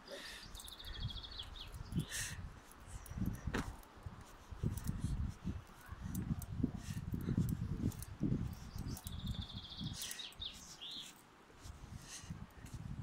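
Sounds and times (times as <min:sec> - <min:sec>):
songbird trilling: 0:08.6 - 0:11.1.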